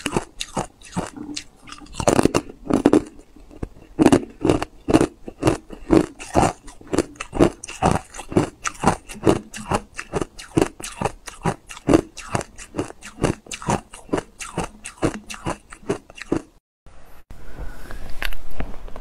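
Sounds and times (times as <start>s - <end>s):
ice being chewed and crunched: 0.0s - 16.6s.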